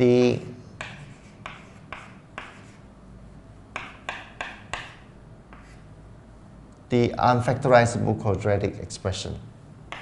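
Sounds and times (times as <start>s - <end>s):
chalk strokes on a chalkboard: 0.8s - 2.9s, 3.8s - 5.9s.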